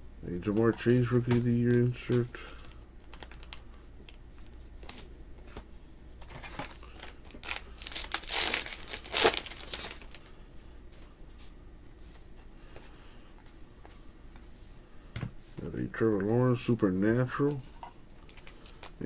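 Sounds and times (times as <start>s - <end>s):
foil wrapper tearing and crinkling: 2.1s - 3.6s, 6.6s - 10.3s.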